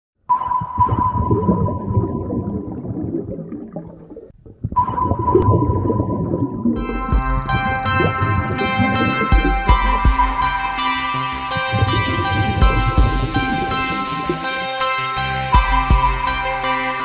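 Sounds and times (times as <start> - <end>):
low rumbling: 0.8 - 14.7
synthesizer chords with bass: 5.0 - 17.0.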